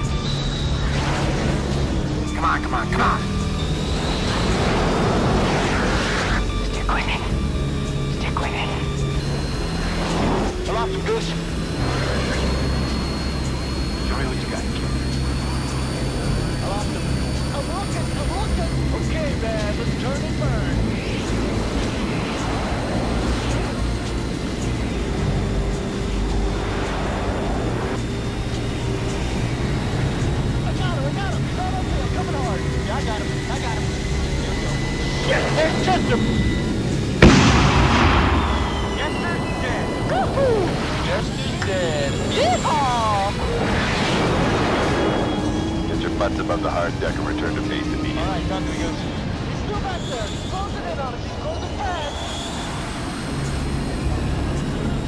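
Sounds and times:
jet fly-by sweeps: 0.0s - 55.0s
dramatic orchestral score: 18.0s - 50.9s
loud blast: 35.3s - 42.3s.

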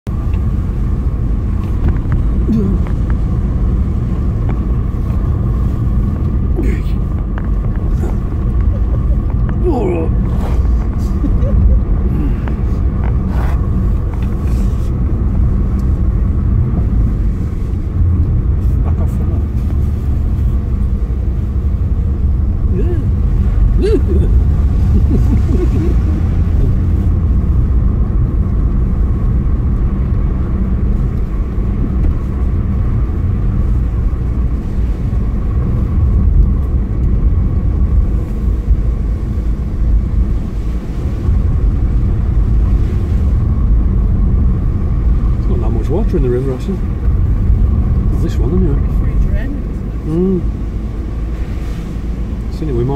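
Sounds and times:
car engine and road noise: 0.0s - 52.9s.

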